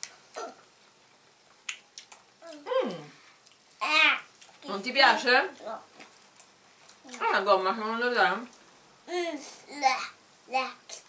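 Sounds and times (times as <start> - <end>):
person chewing: 0.0 - 2.6, 3.4 - 4.6
person humming: 2.4 - 3.2.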